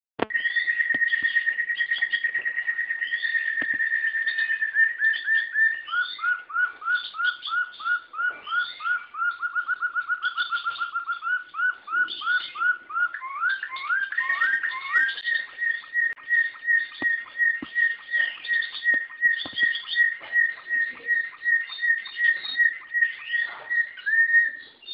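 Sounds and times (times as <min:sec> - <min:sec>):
canary singing: 0:00.2 - 0:24.9.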